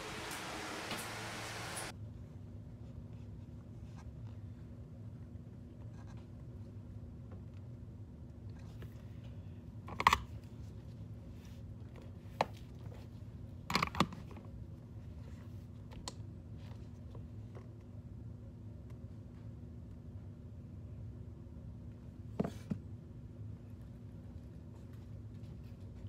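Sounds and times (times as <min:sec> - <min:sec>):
low room hum: 0:00.0 - 0:26.0.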